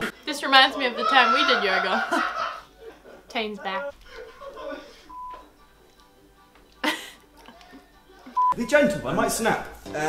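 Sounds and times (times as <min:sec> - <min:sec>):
faint background music: 0:00.0 - 0:10.0
woman laughing loudly: 0:00.7 - 0:05.1.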